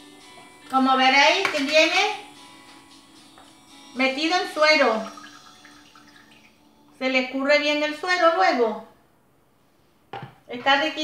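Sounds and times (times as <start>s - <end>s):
liquid trickling and dripping: 4.9s - 7.0s.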